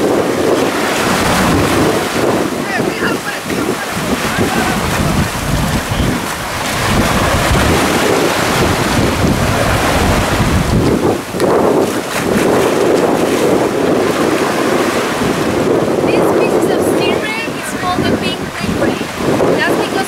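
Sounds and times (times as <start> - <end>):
small waves washing in: 0.0 - 20.0
wind rumbling on microphone: 0.0 - 20.0
water splashing from thrashing fish: 0.6 - 15.2.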